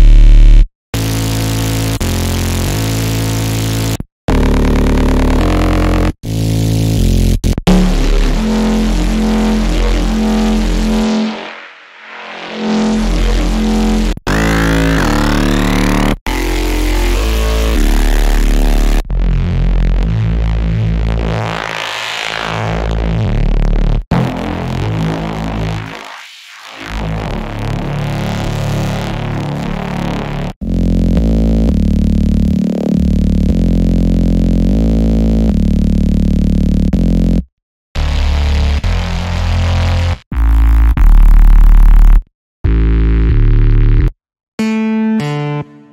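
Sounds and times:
gritty synth bass notes: 0.0s - 45.7s
rising synth sweep: 7.7s - 14.2s.

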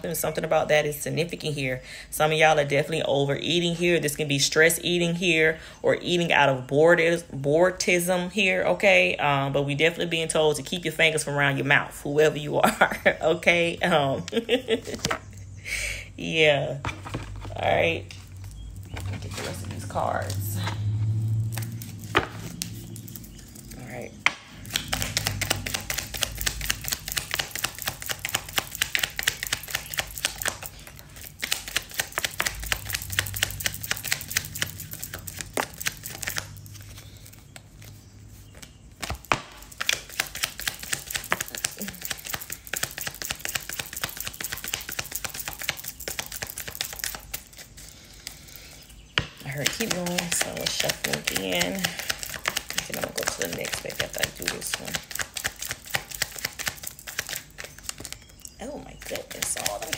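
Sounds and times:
cards being shuffled: 14.2s - 15.3s, 16.8s - 48.7s, 49.4s - 59.9s.

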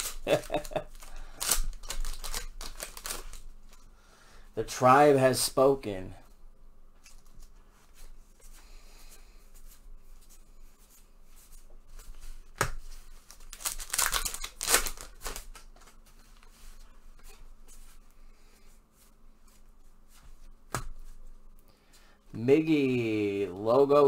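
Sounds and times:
wrapper tearing and crinkling: 0.0s - 3.5s, 13.2s - 15.7s
cards handled: 0.0s - 3.8s, 10.9s - 16.8s.

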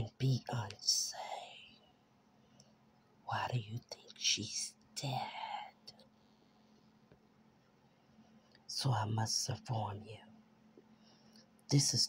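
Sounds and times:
person whispering: 0.0s - 1.9s, 3.3s - 6.0s, 8.6s - 10.3s.

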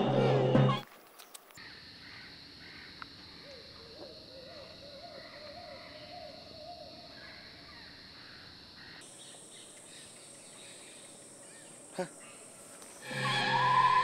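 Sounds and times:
high insect drone: 0.8s - 14.0s.

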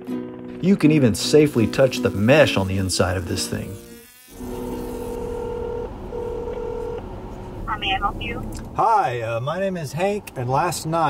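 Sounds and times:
telephone ringing tone: 5.2s - 7.0s.

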